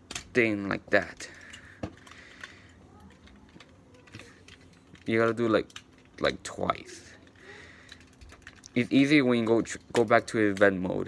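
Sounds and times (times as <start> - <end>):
small plastic toy clicks: 7.3 - 8.8.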